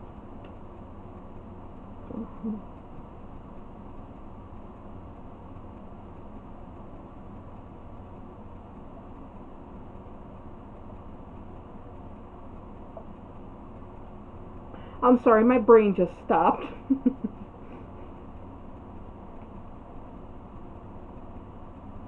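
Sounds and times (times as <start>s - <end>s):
room tone hiss and hum: 0.0s - 22.0s.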